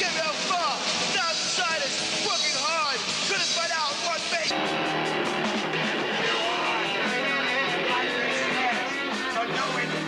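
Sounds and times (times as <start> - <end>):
voices talking over one another: 5.8 - 10.0.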